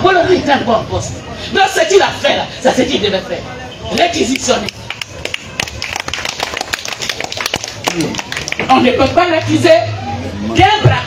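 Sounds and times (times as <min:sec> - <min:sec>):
audience clapping: 0:04.3 - 0:09.2.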